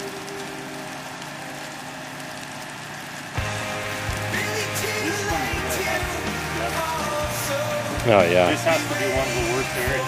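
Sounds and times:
music with low bass note: 3.3s - 10.0s.

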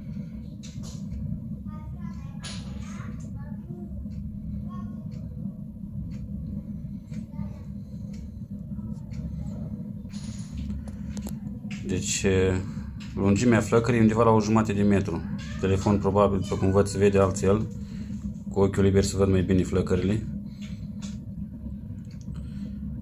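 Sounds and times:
burner fire rumbling: 0.0s - 23.0s
faint voices: 7.0s - 20.4s.

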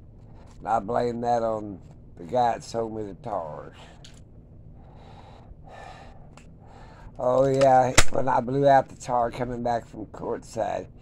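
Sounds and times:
man breathing quietly: 0.1s - 0.6s, 3.7s - 7.2s.

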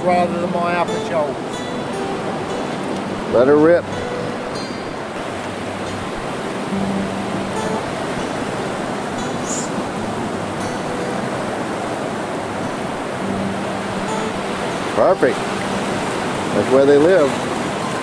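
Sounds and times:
waves breaking on beach: 0.0s - 18.0s.

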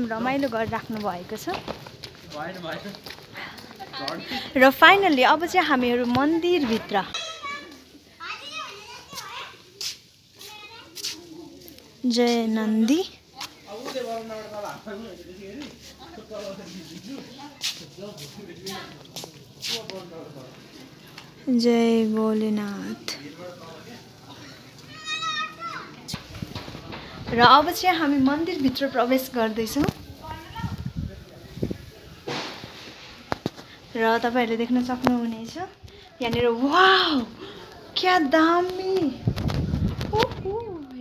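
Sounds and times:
children talking and calling out: 3.3s - 14.1s, 24.0s - 32.2s, 34.7s - 41.0s.

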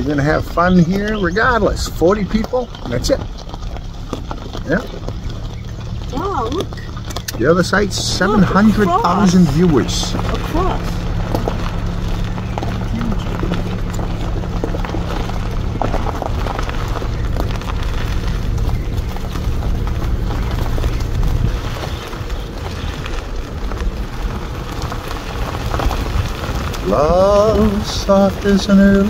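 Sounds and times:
car engine and road noise: 0.0s - 29.0s.

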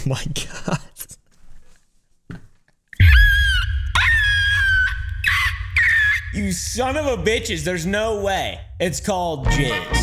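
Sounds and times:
man screaming shrilly: 3.0s - 6.7s.

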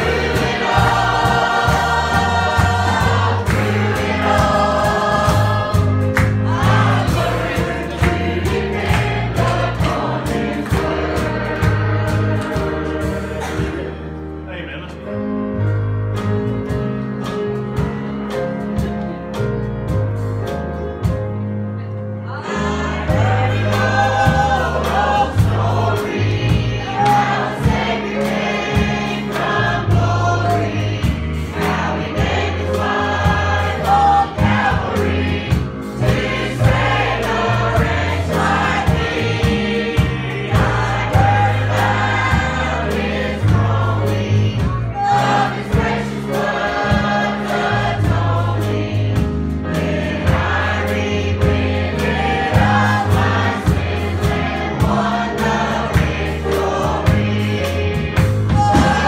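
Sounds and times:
girls singing gospel song: 0.0s - 14.1s, 22.3s - 59.0s
electric bass guitar: 0.0s - 28.0s
drum kit: 0.0s - 59.0s.

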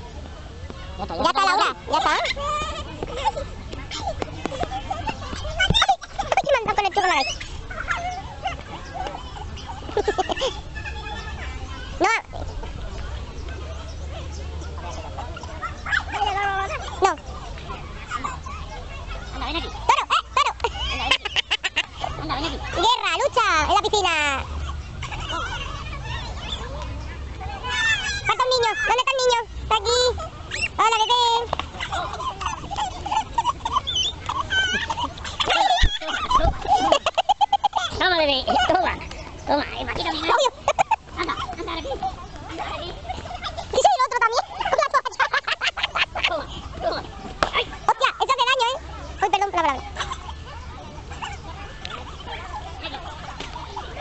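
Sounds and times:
children squealing: 24.4s - 49.2s
child laughing and squealing: 31.8s - 38.8s.

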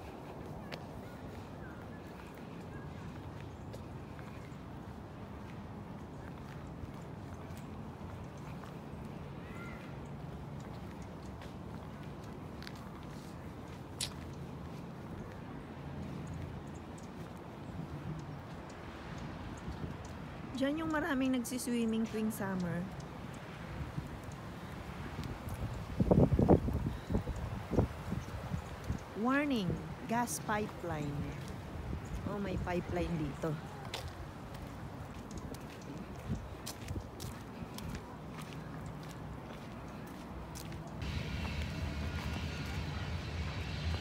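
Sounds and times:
footsteps crunching on dirt path: 0.0s - 18.6s, 30.4s - 44.0s
wind buffeting microphone: 22.9s - 44.0s
low microphone rumble: 41.0s - 44.0s.

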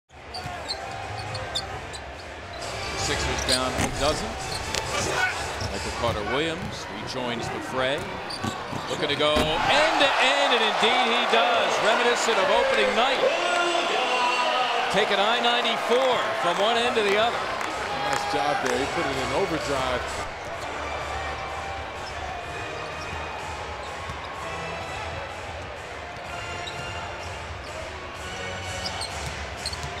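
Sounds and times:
crowd noise: 0.1s - 30.0s
sneaker squeaks on hardwood: 0.3s - 2.7s, 3.3s - 6.8s, 8.0s - 9.6s, 28.8s - 30.0s.

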